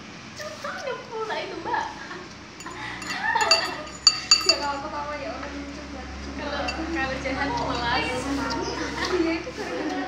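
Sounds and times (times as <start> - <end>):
metal spoon clinking ceramic bowl: 2.6 - 4.8, 6.6 - 8.1.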